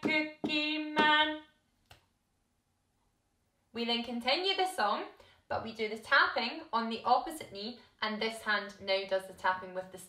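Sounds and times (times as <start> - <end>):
woman singing unaccompanied: 0.0 - 1.4.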